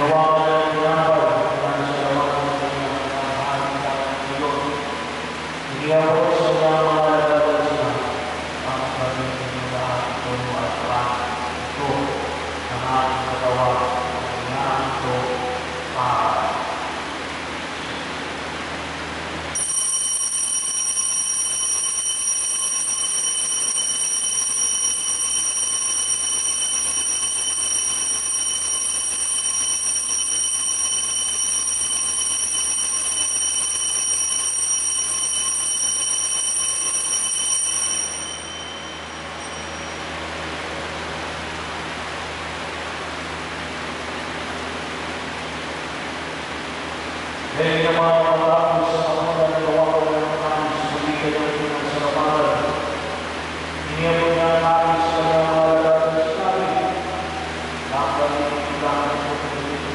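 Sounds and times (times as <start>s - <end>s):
altar bell ringing: 19.6s - 40.3s.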